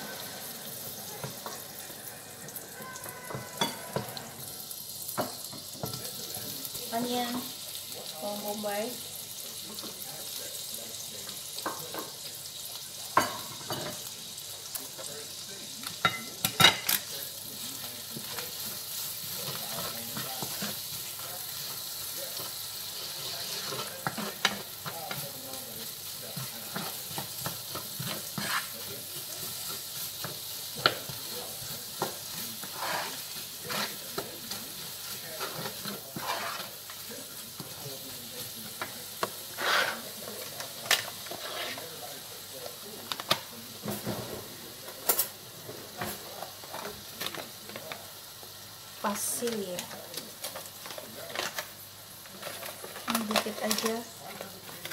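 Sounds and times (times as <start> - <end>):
onion and garlic sizzling in pan: 0.0 - 54.9
wooden spoon knocking on pan: 3.0 - 4.1.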